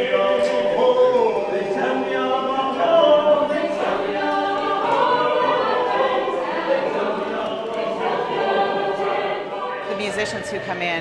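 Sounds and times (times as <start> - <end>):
mixed choir singing in harmony: 0.0 - 11.0.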